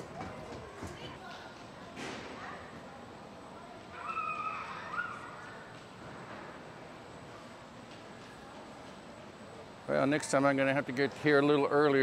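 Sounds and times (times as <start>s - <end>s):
low background murmur: 0.0s - 12.0s.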